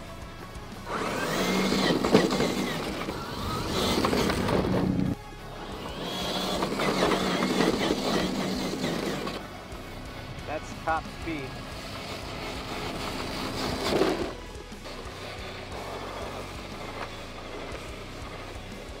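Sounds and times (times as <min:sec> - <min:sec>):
gravel crunching under tyres: 0:00.0 - 0:19.0
toy car electric motor whining: 0:00.0 - 0:19.0.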